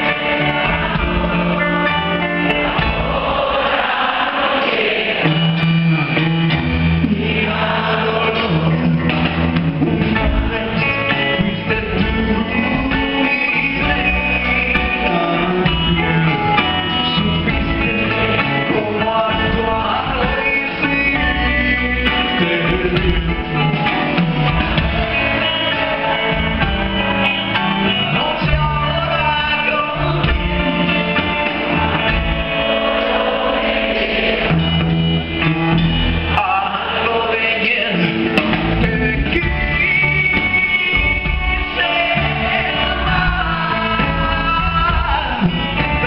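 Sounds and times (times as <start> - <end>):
guitar: 0.0 - 46.0
live rock band playing: 0.0 - 46.0
man singing into a microphone: 7.1 - 23.7, 28.0 - 30.5, 36.4 - 46.0.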